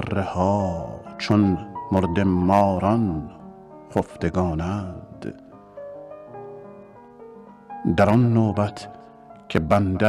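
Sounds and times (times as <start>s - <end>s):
slow piano melody: 0.0s - 10.0s.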